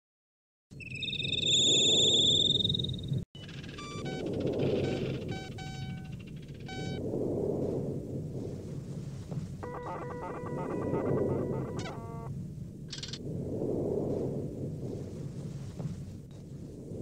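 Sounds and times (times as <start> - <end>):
high warbling tone: 0.8 - 7.0, 9.6 - 12.3
short electronic beeps and chirps: 0.8 - 7.0, 9.6 - 12.3.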